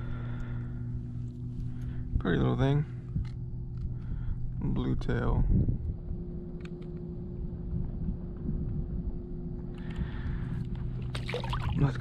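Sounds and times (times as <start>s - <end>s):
faint steady hum: 0.0s - 12.0s
wind rumbling on microphone: 0.0s - 12.0s.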